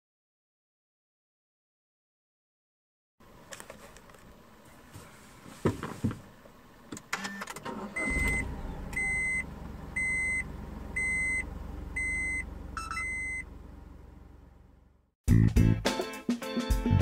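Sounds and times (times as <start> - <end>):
car engine starting and idling: 3.2 - 15.2
seatbelt reminder chime: 12.0 - 13.5.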